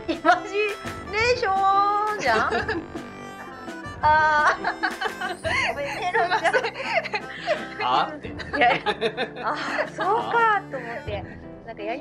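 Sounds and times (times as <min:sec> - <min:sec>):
background music: 0:00.0 - 0:12.0
people laughing: 0:02.2 - 0:03.0, 0:04.4 - 0:10.6.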